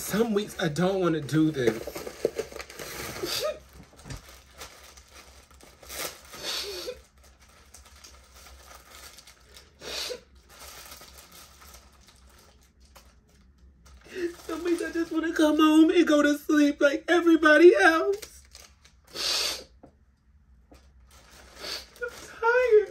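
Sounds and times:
plastic wrapping crinkling: 0.1s - 15.9s, 18.0s - 19.2s, 20.7s - 22.9s.

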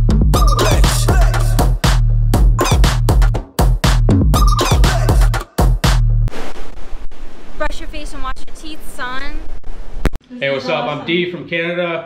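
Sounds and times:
electronic music: 0.0s - 6.3s
woman speaking: 7.6s - 9.5s.

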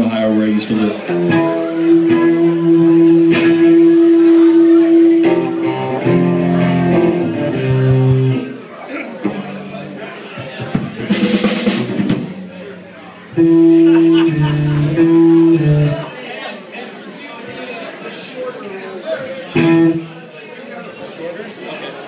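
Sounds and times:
voices chattering: 0.0s - 22.0s
electric guitar chords: 1.0s - 8.6s, 9.2s - 10.1s, 13.2s - 16.1s, 19.6s - 20.2s
cymbal and drums: 10.6s - 12.8s.

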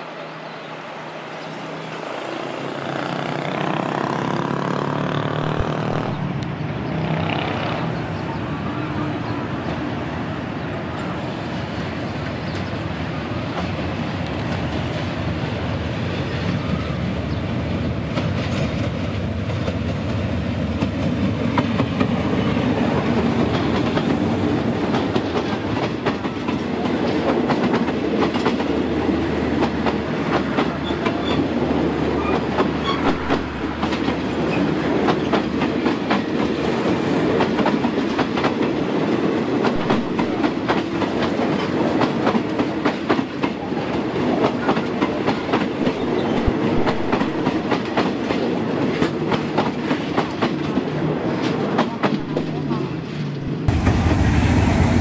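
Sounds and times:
train coaches rumbling past: 0.0s - 55.0s.

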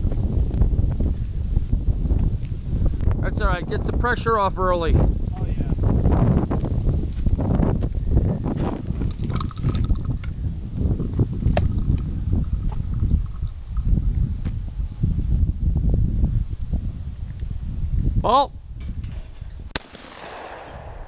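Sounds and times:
footsteps on pavement: 0.0s - 3.1s, 6.4s - 9.1s, 13.8s - 14.7s
wind buffeting microphone: 0.0s - 21.0s.

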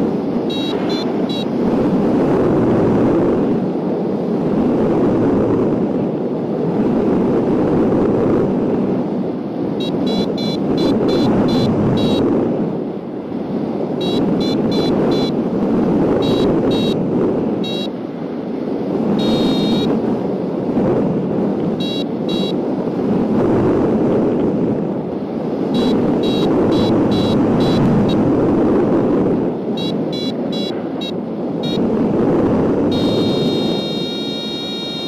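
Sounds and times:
wind rushing over microphone: 0.0s - 35.0s
variometer beeping: 0.4s - 1.8s, 9.8s - 12.3s, 14.0s - 15.4s, 16.2s - 17.0s, 17.6s - 18.0s, 19.2s - 20.0s, 21.7s - 22.6s, 25.7s - 28.4s, 29.7s - 32.0s, 32.8s - 35.0s.

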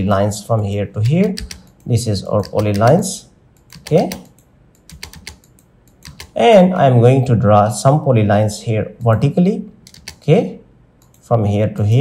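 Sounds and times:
mouse and keyboard clicks: 3.6s - 6.4s, 9.8s - 10.3s.

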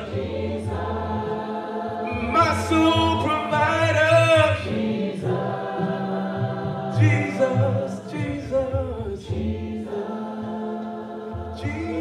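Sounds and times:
voices singing a hymn in harmony: 0.0s - 12.0s
man singing into a microphone: 2.1s - 4.7s, 7.0s - 9.3s, 11.6s - 12.0s.

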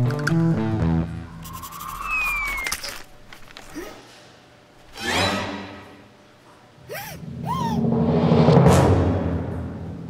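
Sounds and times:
cartoon voice squeaky cries: 1.8s - 2.9s
low swelling sound: 7.2s - 10.0s.

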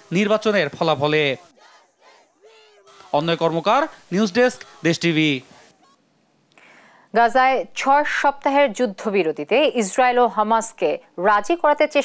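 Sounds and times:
faint hiss: 2.9s - 11.8s.

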